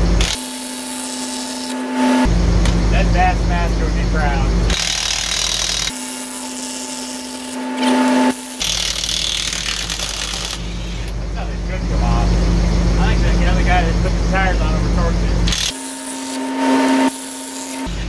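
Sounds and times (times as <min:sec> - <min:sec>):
impact wrench on lug nuts: 0:00.0 - 0:01.8, 0:04.7 - 0:11.2, 0:15.5 - 0:15.8
engine idling: 0:02.2 - 0:05.2, 0:09.5 - 0:15.7.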